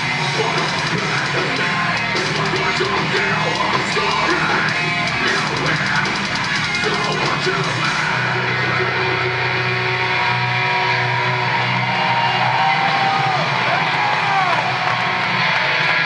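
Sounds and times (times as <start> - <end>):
distorted electric guitars: 0.0 - 16.0
live metal band playing: 0.0 - 16.0.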